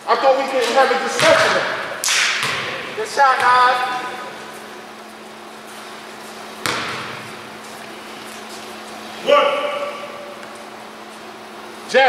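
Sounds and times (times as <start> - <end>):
steady low hum: 0.0 - 12.0
basketball knock with echo: 1.1 - 3.6, 6.6 - 7.3.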